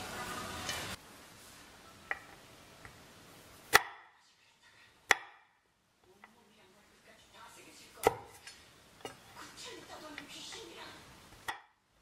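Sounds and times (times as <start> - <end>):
knife chopping nuts on wooden board: 3.7 - 4.1, 5.1 - 5.5.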